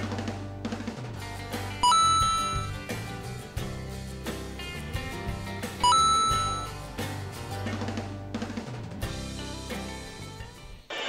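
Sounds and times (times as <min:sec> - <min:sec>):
background music: 0:00.0 - 0:10.9
bright bell-like ding: 0:01.8 - 0:02.7, 0:05.8 - 0:06.7.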